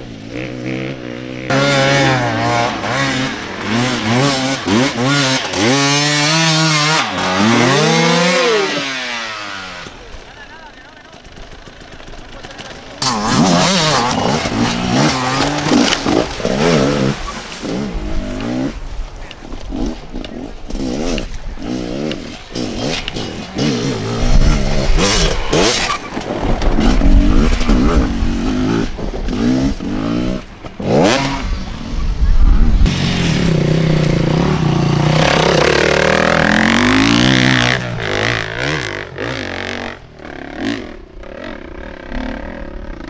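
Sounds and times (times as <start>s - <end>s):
dirt bike engine revving: 0.0s - 18.8s, 19.7s - 43.0s.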